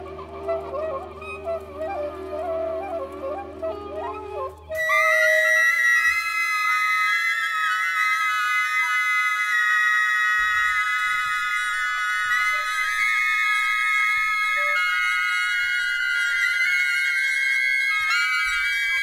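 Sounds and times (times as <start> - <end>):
flutes and saxophones holding high notes: 0.0 - 19.0.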